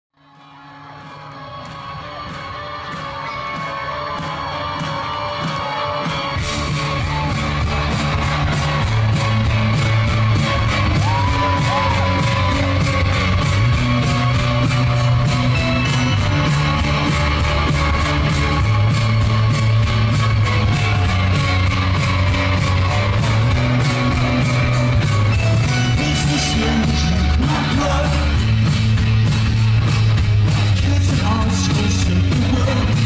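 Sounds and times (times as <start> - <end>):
live rock band: 0.6 - 33.0
steady drum beat: 2.3 - 33.0.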